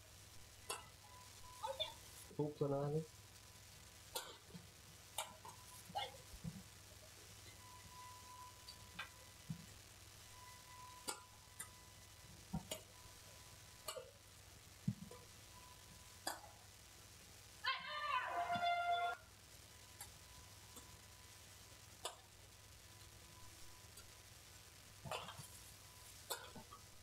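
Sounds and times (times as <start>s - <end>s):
rackets hitting shuttlecock: 13.8s - 14.1s, 16.2s - 16.6s.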